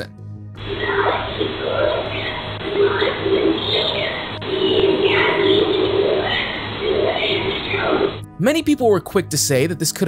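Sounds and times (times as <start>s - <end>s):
electrical hum: 0.0s - 8.6s
eerie voice-like moaning: 0.6s - 8.2s.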